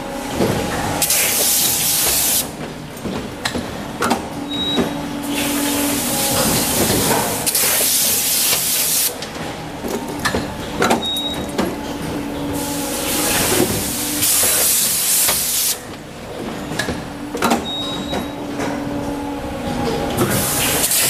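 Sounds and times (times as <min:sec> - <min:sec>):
machine hum: 0:00.0 - 0:21.0
machine clanks and knocks: 0:00.3 - 0:21.0
compressed air hissing: 0:01.0 - 0:02.5, 0:05.3 - 0:09.2, 0:12.6 - 0:15.8.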